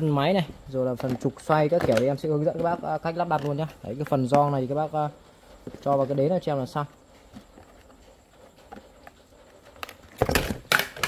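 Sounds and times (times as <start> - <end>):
plastic parts being handled: 0.0 - 11.0.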